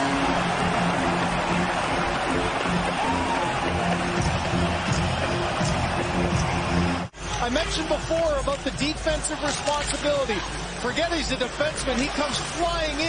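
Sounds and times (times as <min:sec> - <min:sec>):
crowd cheering: 0:00.0 - 0:13.0
goal celebration music: 0:00.0 - 0:13.0.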